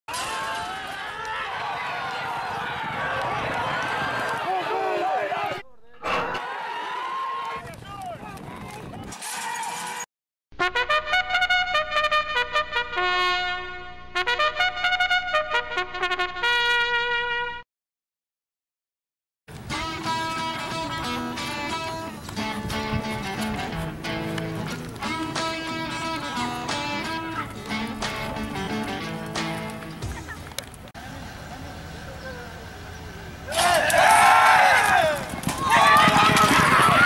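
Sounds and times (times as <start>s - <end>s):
voices shouting: 0.1s - 9.9s, 31.0s - 37.0s
trumpet fanfare: 10.6s - 17.6s.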